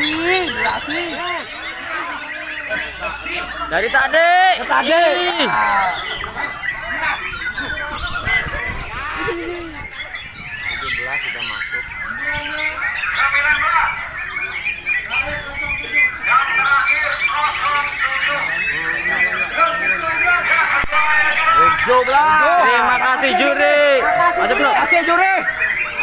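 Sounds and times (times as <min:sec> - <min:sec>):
many songbirds chirping: 0:00.0 - 0:26.0.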